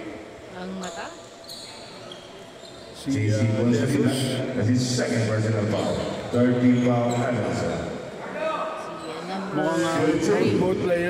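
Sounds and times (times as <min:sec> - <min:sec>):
sneakers squeaking: 0:00.8 - 0:03.1, 0:05.8 - 0:07.6.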